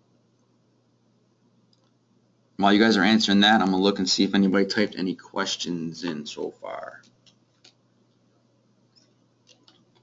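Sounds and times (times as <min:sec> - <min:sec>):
faint clicks: 0:01.7 - 0:02.0.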